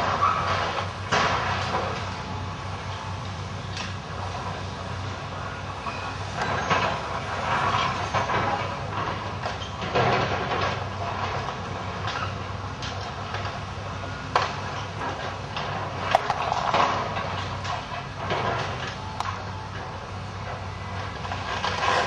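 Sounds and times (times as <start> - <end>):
diesel engine running: 0.0 - 22.0
masonry crunching and clattering: 6.4 - 22.0.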